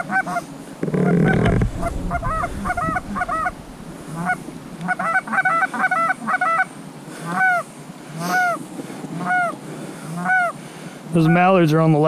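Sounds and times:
goose honking: 1.0 - 7.6, 10.2 - 10.5, 11.2 - 11.5.

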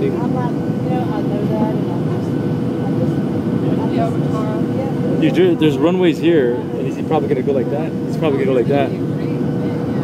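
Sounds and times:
jet engines roaring: 0.0 - 10.0.

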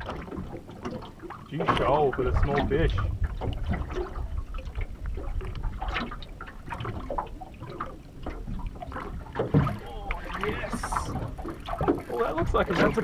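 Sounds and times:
waves lapping against metal hull: 0.0 - 13.0
wind rumble on microphone: 1.5 - 13.0.

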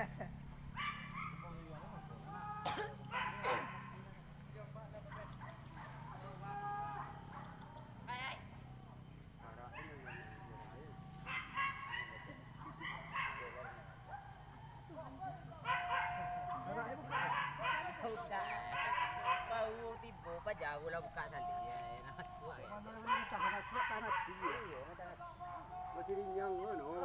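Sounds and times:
dogs yelping and barking: 0.5 - 4.1, 5.1 - 8.6, 9.4 - 27.0.

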